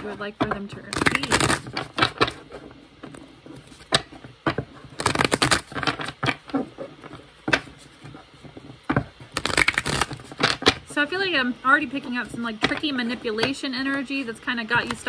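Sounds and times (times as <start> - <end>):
cards being shuffled: 0.0 - 10.8.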